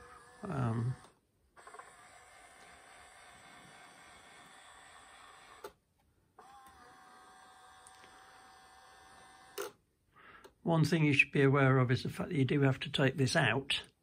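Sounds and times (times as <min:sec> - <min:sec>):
small electric gear motor whining: 0:00.0 - 0:05.8, 0:06.4 - 0:09.8.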